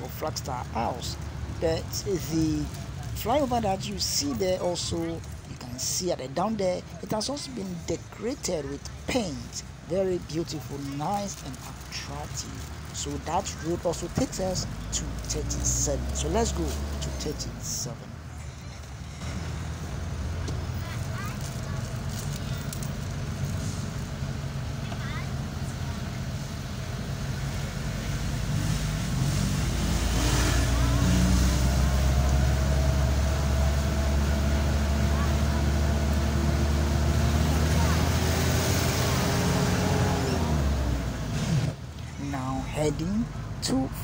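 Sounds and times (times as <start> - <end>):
car engine and road noise: 0.0 - 44.0
steady engine tone: 23.2 - 41.4.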